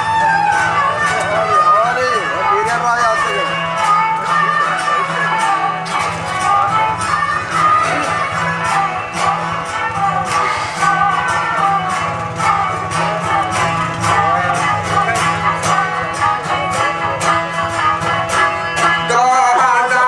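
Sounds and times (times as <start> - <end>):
plucked lute strumming: 0.0 - 20.0
man singing: 0.9 - 12.1, 12.8 - 17.3, 18.8 - 20.0.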